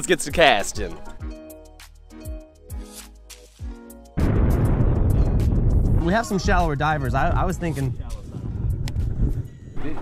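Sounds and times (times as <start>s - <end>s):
wind rumble on microphone: 4.2s - 10.0s.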